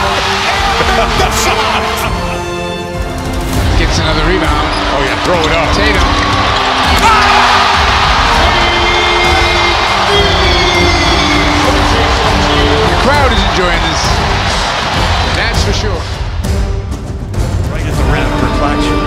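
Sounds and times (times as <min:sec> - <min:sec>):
arena crowd noise: 0:00.0 - 0:02.4, 0:03.6 - 0:16.5
background music: 0:00.0 - 0:19.0.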